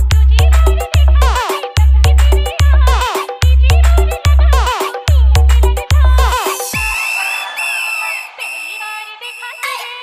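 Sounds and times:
dance music bass beat: 0.0s - 10.0s
high held synth tones: 6.6s - 10.0s.

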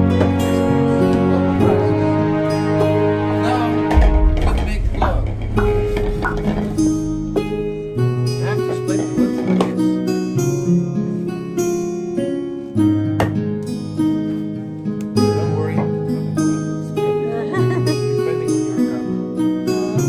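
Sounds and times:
plucked strings music: 0.0s - 20.0s.

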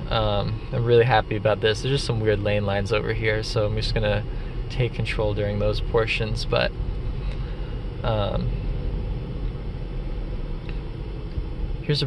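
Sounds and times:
road and tyre noise in car: 0.0s - 12.0s.

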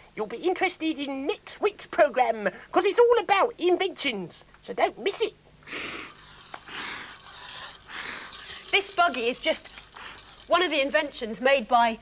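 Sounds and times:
person breathing heavily: 5.6s - 8.6s.

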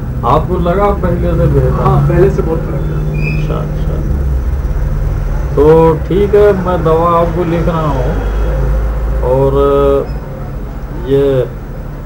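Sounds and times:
low hum: 0.0s - 12.0s
man talking: 0.2s - 4.3s, 5.5s - 8.3s, 9.2s - 10.1s.

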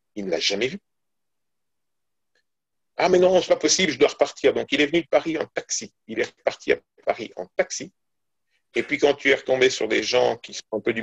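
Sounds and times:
man's voice: 8.8s - 11.0s.

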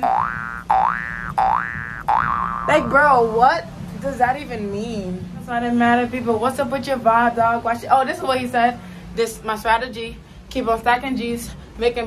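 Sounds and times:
electronic upward pitch sweep: 0.0s - 3.0s.

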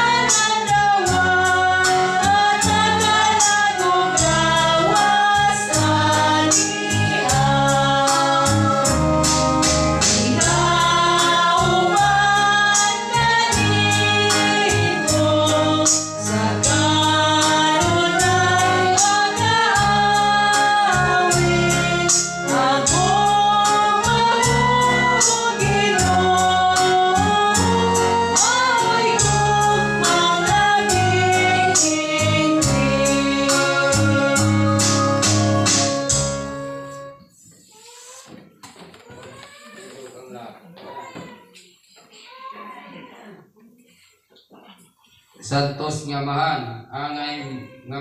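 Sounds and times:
hymn singing: 0.0s - 37.2s
organ chord: 0.0s - 37.2s
musical accompaniment with bass: 0.0s - 37.3s.

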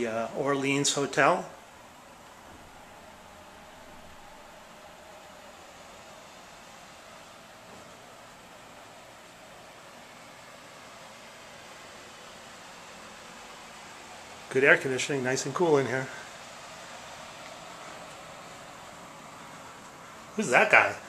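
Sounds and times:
air conditioner hissing: 0.0s - 21.0s.

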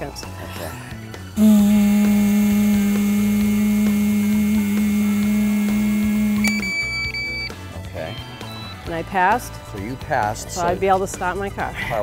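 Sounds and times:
breath rushing through mouthpiece: 1.4s - 6.7s
woman humming while blowing: 1.4s - 6.8s
high electronic beep: 6.1s - 7.5s.

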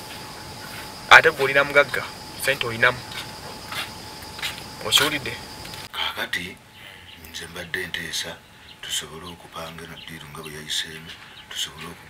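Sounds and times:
crickets chirping: 0.0s - 5.9s
man speaking: 1.1s - 3.1s, 4.8s - 6.6s, 7.2s - 12.0s.

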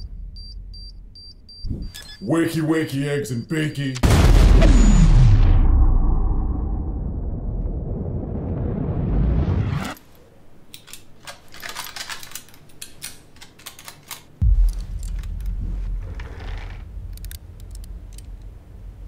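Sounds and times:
deep low boom: 4.0s - 9.9s, 14.4s - 19.0s
explosion rumble: 4.0s - 10.0s, 14.4s - 19.0s.

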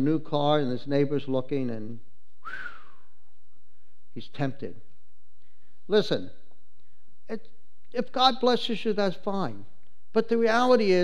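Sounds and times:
man whistling: 2.4s - 3.3s.

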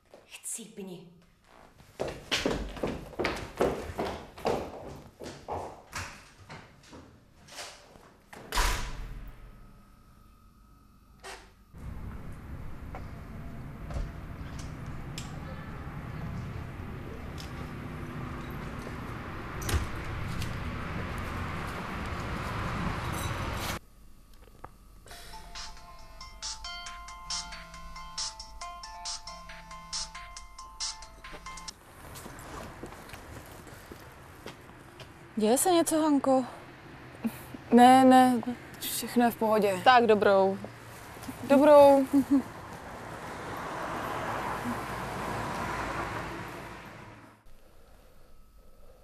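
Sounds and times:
phone ringtone melody: 25.1s - 31.7s.

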